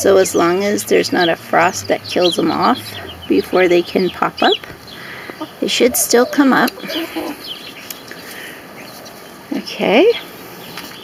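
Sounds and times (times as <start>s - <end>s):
chickens clucking: 0.0s - 9.3s.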